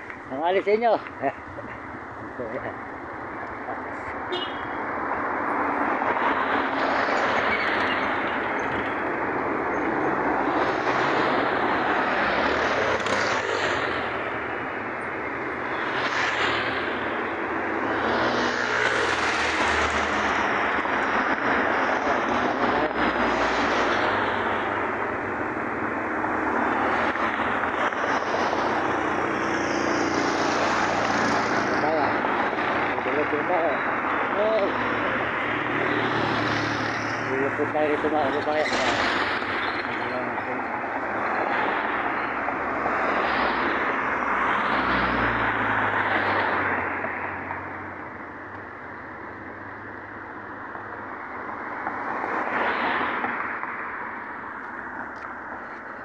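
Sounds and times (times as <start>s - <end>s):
road and wind noise in vehicle: 0.0s - 56.0s
traffic rushing past: 0.0s - 56.0s.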